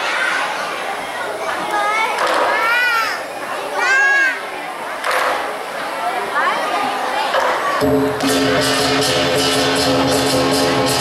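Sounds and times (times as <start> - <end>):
children shouting: 0.0 - 4.6
crowd chatter: 0.0 - 11.0.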